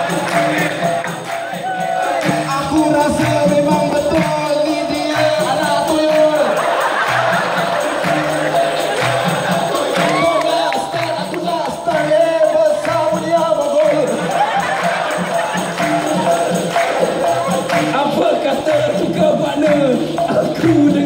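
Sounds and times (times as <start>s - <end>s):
chorus clapping in rhythm: 0.0s - 21.0s
chorus singing with lead singer: 0.0s - 21.0s
jingling percussion: 0.0s - 21.0s.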